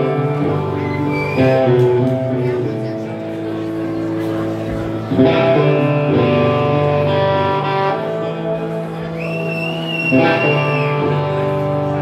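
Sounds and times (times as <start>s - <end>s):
live punk rock band: 0.0s - 12.0s.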